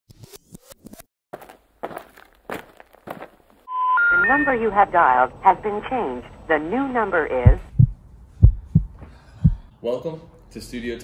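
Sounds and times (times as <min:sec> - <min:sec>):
telephone intercept tone: 0:03.7 - 0:04.9.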